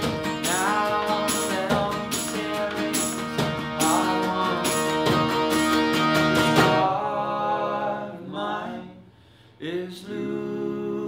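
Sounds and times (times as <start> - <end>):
acoustic guitars strumming: 0.0 - 8.8.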